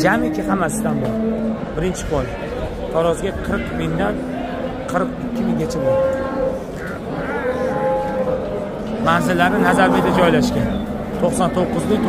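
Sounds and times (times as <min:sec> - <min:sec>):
cow mooing: 0:05.2 - 0:11.0.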